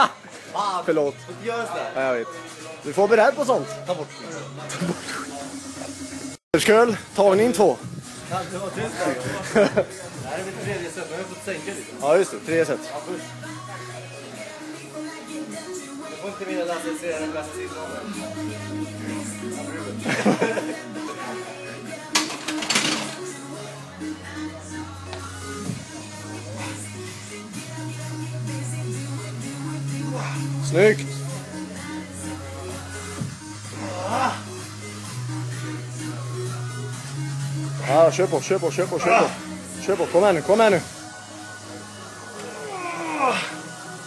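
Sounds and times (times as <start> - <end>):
background music with held notes: 0.0 - 44.0
man groaning with effort: 33.7 - 34.5, 42.4 - 43.7.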